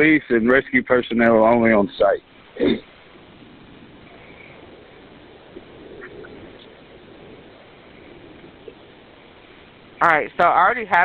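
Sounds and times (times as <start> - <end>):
telephone line hiss: 0.0 - 11.0.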